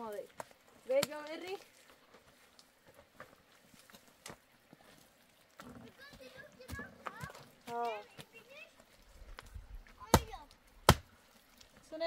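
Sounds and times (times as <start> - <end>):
sharp knocks on stone wall: 10.0 - 11.1.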